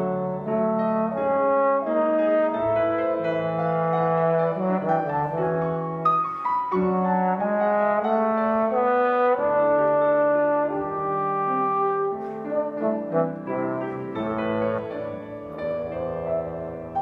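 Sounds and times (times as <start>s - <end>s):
piano accompaniment: 0.0s - 17.0s
trombone melody: 0.0s - 17.0s.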